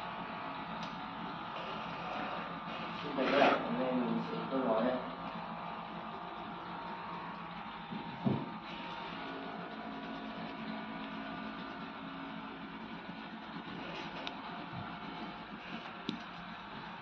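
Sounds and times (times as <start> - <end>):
electrical hum: 0.0 - 17.0
short thump: 7.9 - 8.6.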